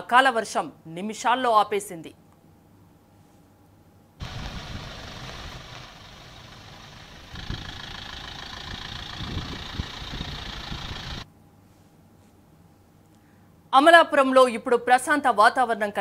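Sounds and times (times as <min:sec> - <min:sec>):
hiss of wet road and rain: 0:04.2 - 0:11.2
truck passing close by: 0:04.2 - 0:11.2
vehicle engines running: 0:04.2 - 0:11.2.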